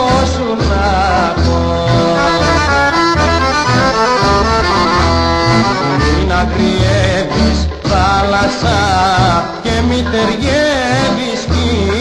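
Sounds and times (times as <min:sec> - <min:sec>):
folk instrumental melody: 0:01.8 - 0:09.0.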